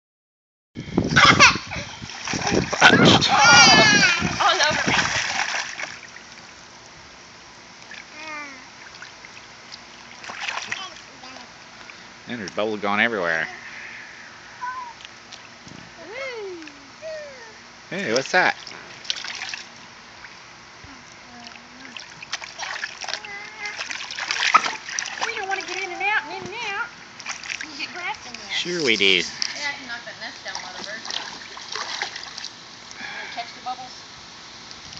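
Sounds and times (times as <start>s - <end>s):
water splashing in a pool: 1.9s - 7.0s, 7.6s - 12.6s, 18.1s - 20.5s, 21.1s - 33.0s
child squealing: 3.0s - 4.4s, 14.6s - 15.0s, 16.1s - 17.6s, 23.2s - 23.9s
small child's voice: 8.1s - 8.7s, 10.7s - 11.6s, 14.6s - 15.0s, 23.1s - 23.9s.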